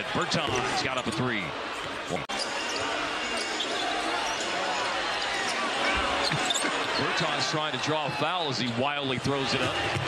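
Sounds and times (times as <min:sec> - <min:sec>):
sneakers squeaking: 0:02.3 - 0:07.2.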